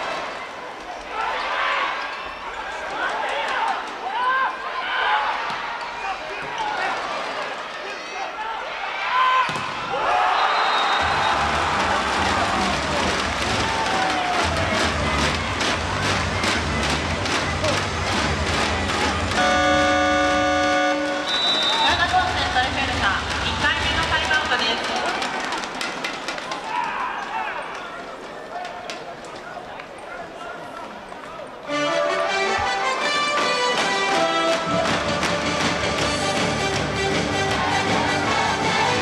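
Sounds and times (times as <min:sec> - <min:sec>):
crowd shouting: 0:07.8 - 0:15.8, 0:36.9 - 0:39.0
referee's whistle: 0:10.3 - 0:11.5, 0:19.4 - 0:22.0.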